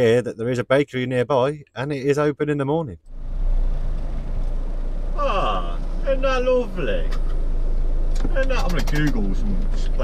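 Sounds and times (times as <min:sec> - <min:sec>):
van engine running: 0:03.1 - 0:10.0.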